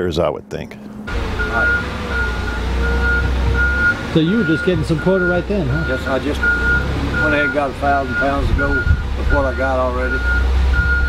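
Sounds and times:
low engine rumble: 0:00.0 - 0:11.0
reversing alarm beeping: 0:01.3 - 0:11.0.

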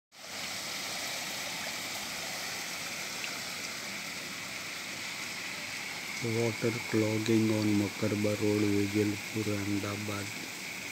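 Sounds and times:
water rushing: 0:00.1 - 0:10.9.

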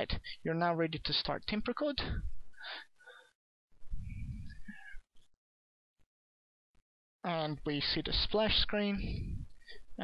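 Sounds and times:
intake of breath: 0:02.6 - 0:03.4
low rumbly microphone noise: 0:03.8 - 0:05.0, 0:09.0 - 0:09.7.

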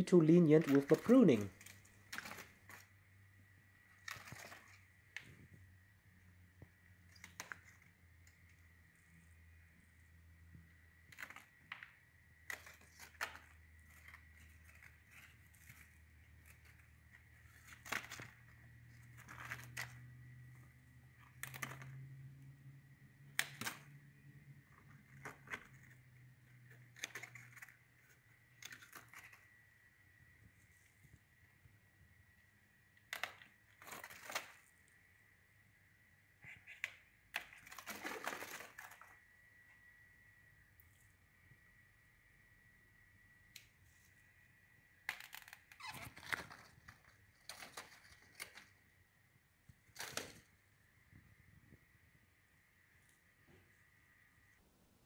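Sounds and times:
faint high whine: 0:00.0 - 0:55.0.

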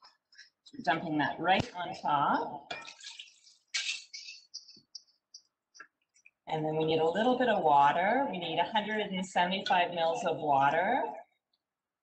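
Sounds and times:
drips and plops: 0:01.6 - 0:06.5
liquid pouring into pot: 0:02.6 - 0:03.8.

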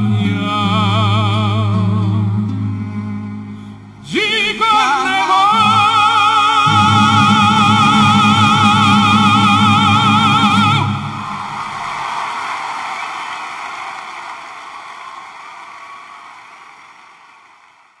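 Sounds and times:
operatic singing with vibrato: 0:00.0 - 0:11.9
audience applause: 0:10.8 - 0:18.0.

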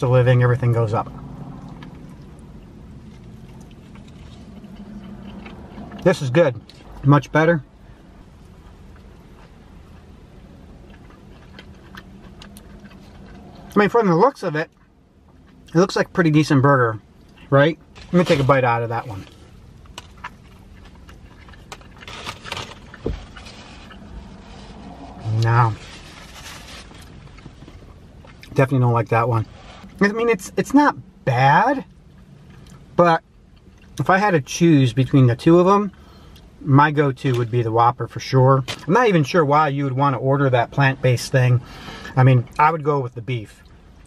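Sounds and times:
low rumble of car cabin: 0:00.0 - 0:44.0
man chewing with mouth clicks: 0:01.6 - 0:06.1, 0:08.3 - 0:13.8, 0:19.3 - 0:22.1
rustling: 0:17.9 - 0:27.9.

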